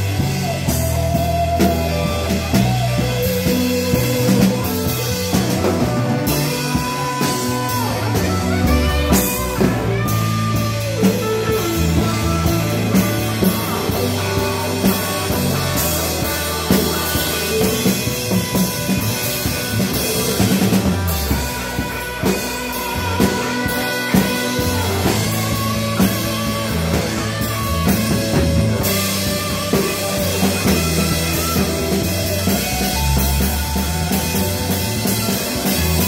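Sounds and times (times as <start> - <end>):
drum kit beat: 0.0 - 36.0
electric bass: 0.0 - 36.0
electric guitars: 0.0 - 36.0.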